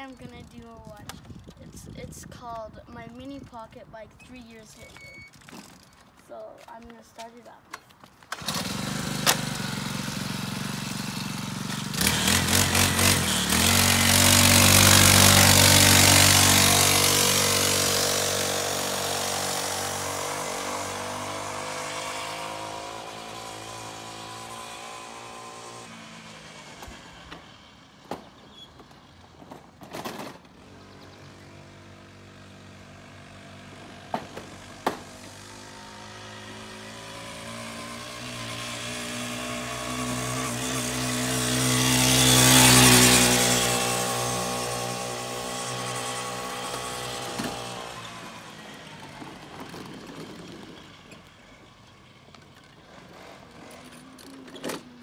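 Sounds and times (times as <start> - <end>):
pocket bike engine revving: 8.3 - 27.8, 30.4 - 55.0.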